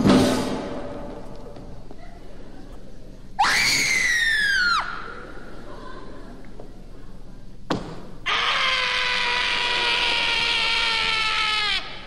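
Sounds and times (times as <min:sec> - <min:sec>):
high-pitched scream: 0:03.4 - 0:05.1, 0:08.3 - 0:12.0.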